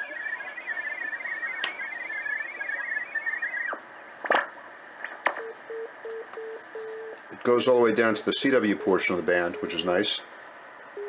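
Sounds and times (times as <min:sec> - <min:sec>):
radio whistles: 0:00.0 - 0:03.8, 0:05.4 - 0:11.0
warbling hopping radio tones: 0:00.0 - 0:03.8
radio band hiss: 0:00.0 - 0:05.9, 0:07.2 - 0:10.9
morse code beeps: 0:05.4 - 0:11.0.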